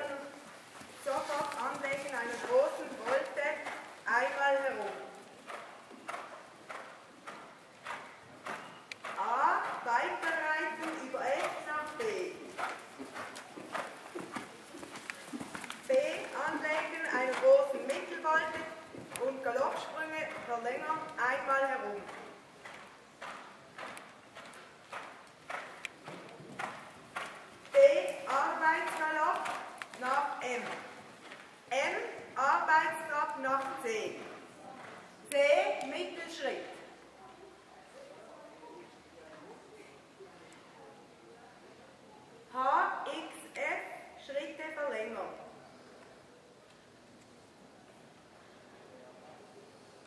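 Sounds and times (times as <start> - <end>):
horse hoofbeats on sand: 0.0 - 32.2
person speaking: 1.0 - 5.2, 15.3 - 22.1, 27.7 - 30.9.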